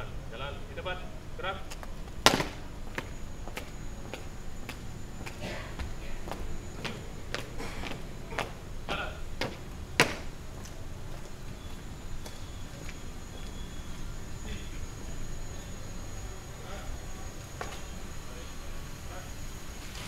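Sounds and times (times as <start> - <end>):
marching footsteps on paving stones: 1.6 - 14.0
loud foot stamps: 1.7 - 11.2.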